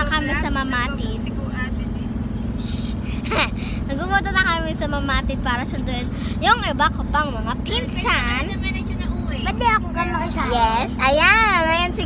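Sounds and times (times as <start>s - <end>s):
steady hum: 0.0s - 12.0s
vehicle rumble from inside cabin: 0.0s - 12.0s
children's voices and laughter: 1.8s - 4.8s, 5.6s - 12.0s.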